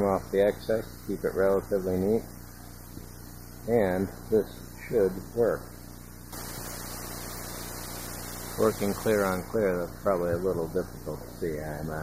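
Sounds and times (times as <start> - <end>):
low mains hum: 0.0 - 12.0
steady hiss: 0.0 - 12.0.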